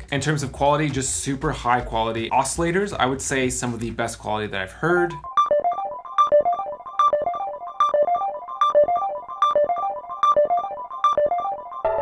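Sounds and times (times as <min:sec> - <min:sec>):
synthesizer arpeggio: 0:05.2 - 0:12.0.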